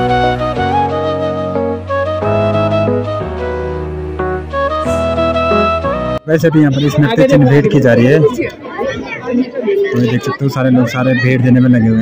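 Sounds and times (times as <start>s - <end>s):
people chattering: 5.6s - 12.0s
man speaking: 6.2s - 8.4s, 9.9s - 12.0s.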